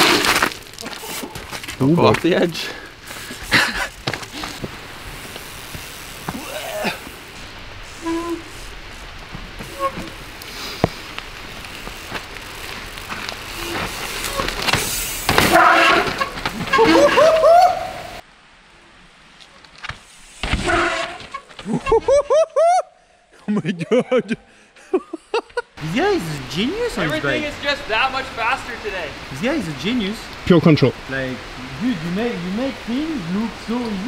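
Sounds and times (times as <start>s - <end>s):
bike tyres rolling and skidding: 0.0s - 18.2s, 18.9s - 22.3s
rain hiss: 0.0s - 22.4s, 23.0s - 34.0s
excited shouts: 15.5s - 18.2s.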